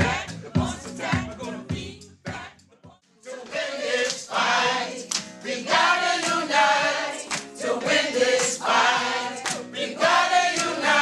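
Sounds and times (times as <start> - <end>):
crowd singing together: 0.0 - 2.6, 3.2 - 11.0.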